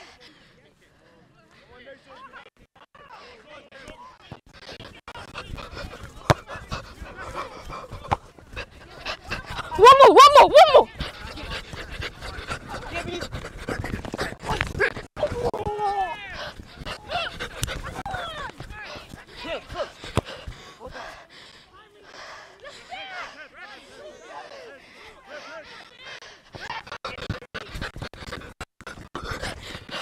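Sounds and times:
distant players calling out: 8.9 - 11.7
people shouting: 9.4 - 11.5, 14.4 - 16.4, 17.0 - 20.0, 22.6 - 25.7.

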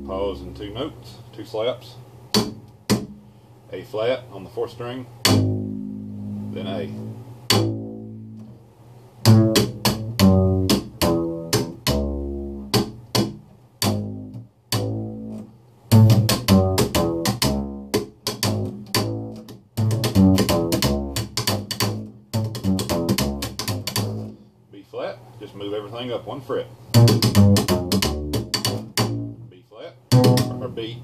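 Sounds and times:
slap upright bass: 0.0 - 1.0, 2.3 - 3.3, 5.2 - 24.5, 26.9 - 29.5, 30.1 - 31.0.

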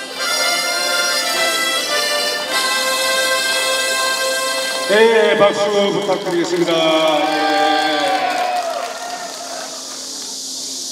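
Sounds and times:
harmonica ensemble playing chords: 0.0 - 8.6.

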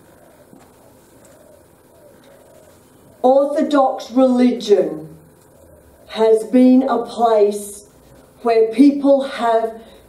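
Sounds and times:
dove cooing: 0.0 - 4.2, 5.2 - 7.0.

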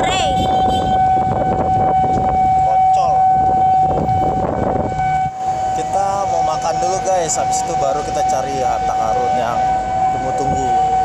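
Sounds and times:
voices: 0.0 - 0.8
level crossing alarm tone: 0.0 - 11.0
low traffic rumble: 0.0 - 11.0.

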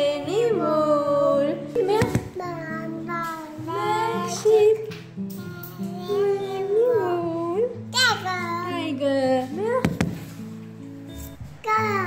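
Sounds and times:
child singing: 2.2 - 4.7, 5.4 - 7.0, 7.9 - 8.7, 11.6 - 12.0.

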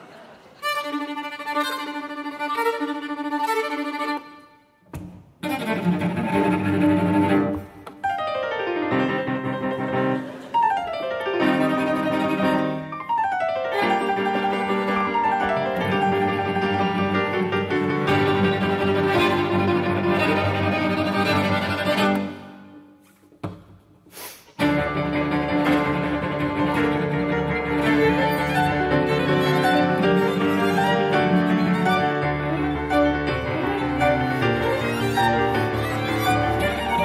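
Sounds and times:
classical chamber music: 0.0 - 23.0, 24.6 - 37.0.

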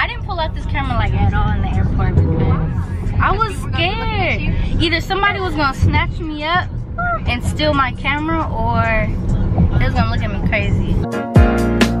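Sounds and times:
road vehicle rumble: 0.0 - 11.0.

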